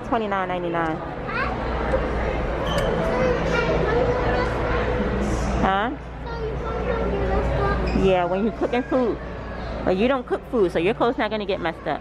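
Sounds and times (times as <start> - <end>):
children chattering: 1.2 - 5.1, 6.2 - 9.8.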